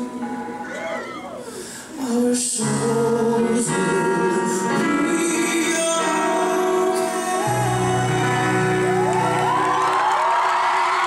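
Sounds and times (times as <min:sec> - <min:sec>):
man singing long held notes: 0:01.4 - 0:09.5.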